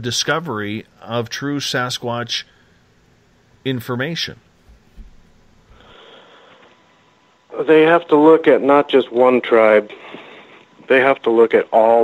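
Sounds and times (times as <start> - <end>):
soft low thump: 4.6 - 5.8
person drawing breath over phone: 5.7 - 6.8, 9.9 - 10.7.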